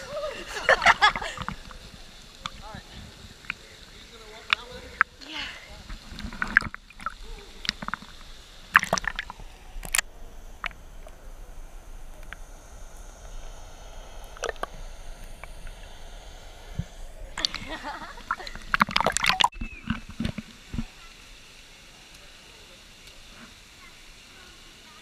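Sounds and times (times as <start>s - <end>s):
water sloshing and splashing: 0.8s - 10.7s, 17.4s - 20.9s
sharp clicks and pops: 5.8s - 11.2s, 16.7s - 20.9s.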